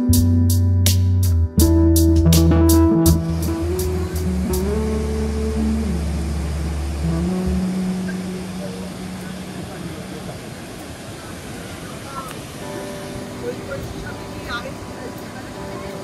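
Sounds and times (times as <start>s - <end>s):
background music held notes: 0.0s - 10.6s, 12.5s - 16.0s
waterfall rushing: 3.2s - 16.0s.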